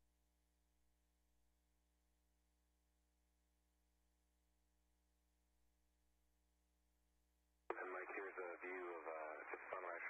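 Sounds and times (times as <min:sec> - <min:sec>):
person speaking over radio: 0:07.7 - 0:10.0
radio click: 0:07.7 - 0:10.0.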